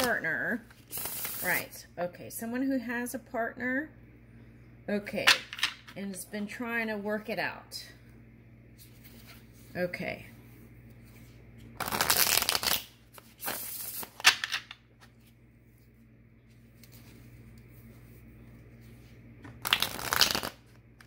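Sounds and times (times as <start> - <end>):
card deck shuffling: 11.1 - 15.3, 19.4 - 20.8.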